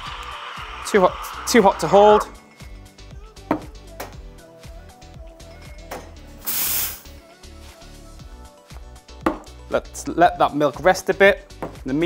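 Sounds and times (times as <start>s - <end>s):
espresso steam wand hissing: 0.0s - 2.2s, 6.4s - 7.1s
background music with light beats: 0.0s - 12.0s.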